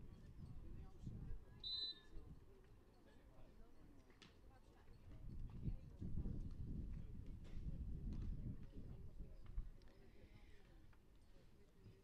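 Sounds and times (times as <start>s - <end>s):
wind buffeting microphone: 5.3s - 9.6s.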